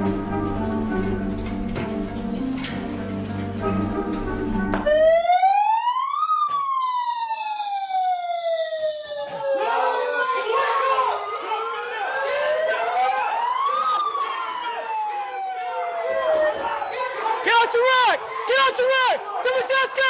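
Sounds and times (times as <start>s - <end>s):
siren wailing: 3.6s - 18.2s
people shouting: 9.3s - 13.4s, 16.6s - 20.0s.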